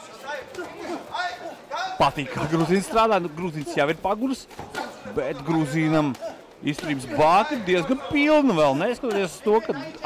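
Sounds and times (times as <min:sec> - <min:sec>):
background chatter: 0:00.0 - 0:10.0
voices speaking: 0:00.0 - 0:10.0.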